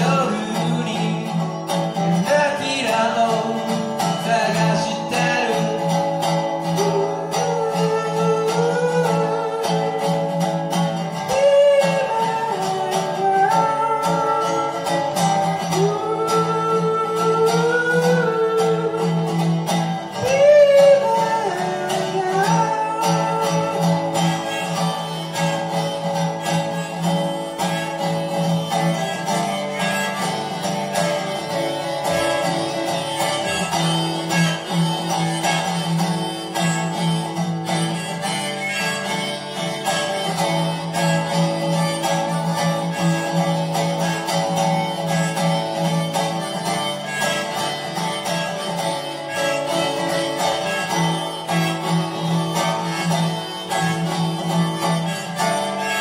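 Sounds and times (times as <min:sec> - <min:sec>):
resonator guitar strummed: 0:00.0 - 0:56.0
sliding guitar melody: 0:00.0 - 0:56.0.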